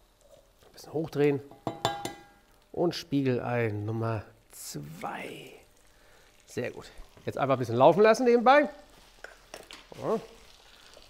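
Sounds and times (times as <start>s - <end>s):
eggs sizzling in a pan: 0.0s - 11.0s.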